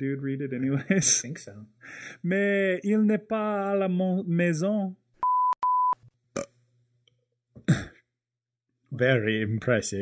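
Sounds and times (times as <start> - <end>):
short electronic beeps: 5.2 - 6.0
person burping loudly: 6.3 - 6.6.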